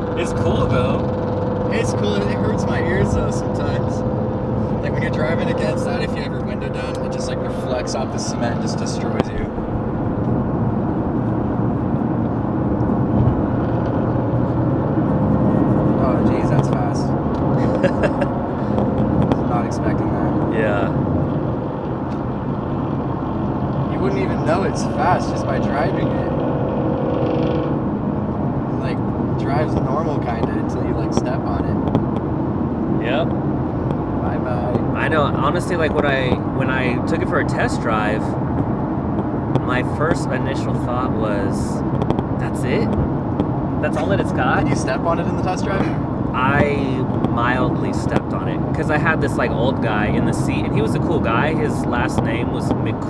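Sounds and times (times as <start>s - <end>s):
car engine and tyre drone: 0.0s - 53.0s.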